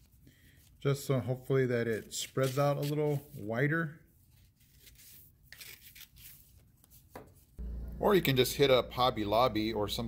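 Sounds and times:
scissors cutting paper: 2.2 - 3.3, 4.6 - 6.5
paper rustling: 4.2 - 7.5
steady low hum: 7.6 - 10.0.

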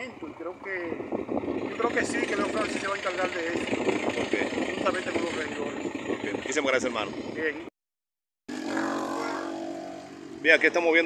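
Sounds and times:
vehicle engine humming: 0.0 - 7.4, 8.5 - 11.0.

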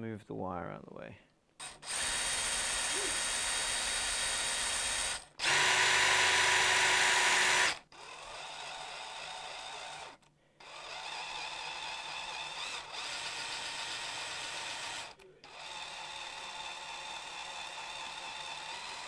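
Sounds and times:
cordless drill boring through wood: 1.6 - 19.0.

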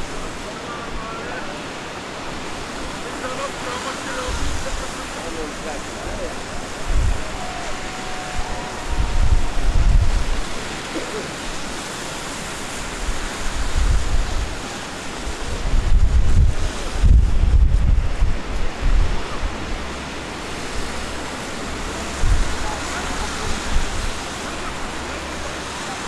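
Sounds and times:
wind buffeting microphone: 1.8 - 26.0.

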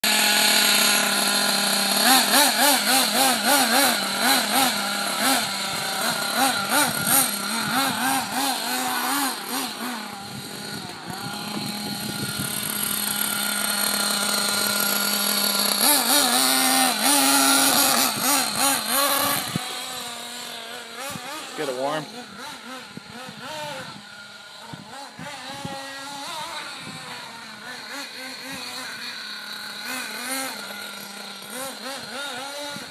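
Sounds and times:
model car engine revving: 0.0 - 32.9.

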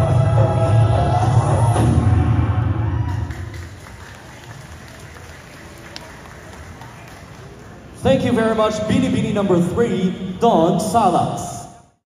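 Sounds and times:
dance music: 0.0 - 3.6
audience applauding: 3.0 - 8.0.

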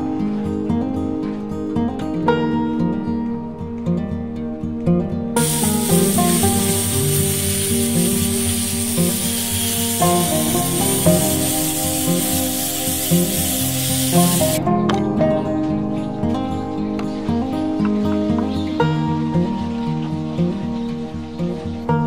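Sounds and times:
acoustic guitar music: 0.0 - 22.0
angle grinder sanding wood: 5.4 - 14.6.

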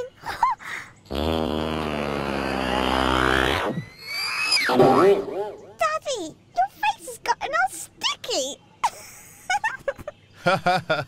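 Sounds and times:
cartoon whistle rising and dropping: 2.6 - 5.0.

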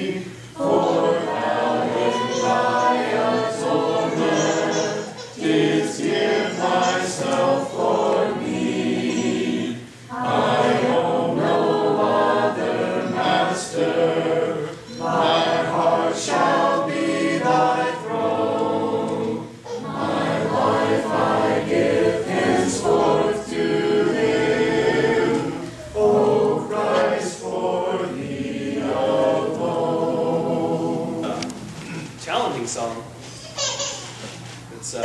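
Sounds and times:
congregation singing a hymn: 0.0 - 32.0.

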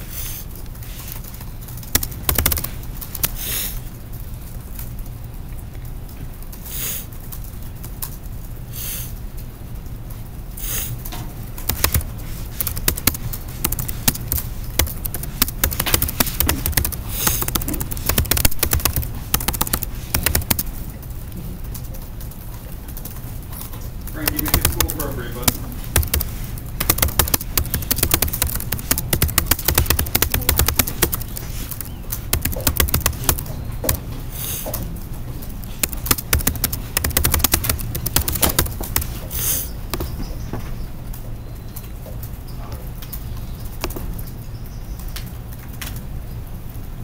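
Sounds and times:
laptop keyboard typing: 0.0 - 5.1, 10.6 - 40.2, 43.6 - 44.3
person speaking: 11.6 - 20.8, 24.0 - 34.2, 35.5 - 39.3.

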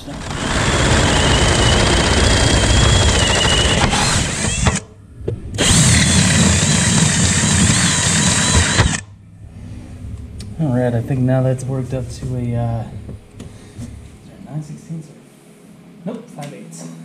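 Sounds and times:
power drill drilling: 0.0 - 4.8, 5.6 - 9.0.

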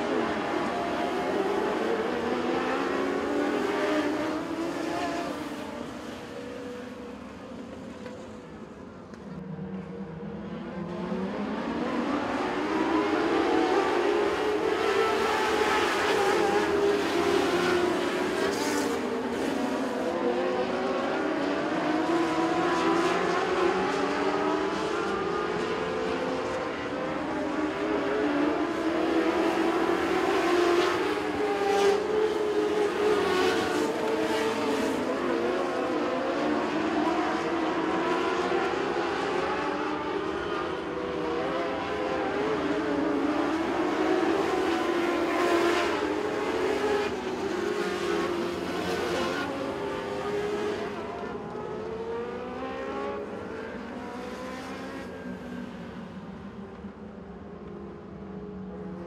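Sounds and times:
race car engines revving: 0.0 - 59.0.

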